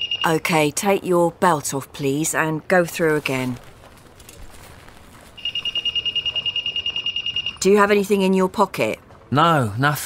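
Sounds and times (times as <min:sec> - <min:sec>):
metal detector pulsing alarm beep: 0:00.0 - 0:00.4, 0:05.4 - 0:07.7.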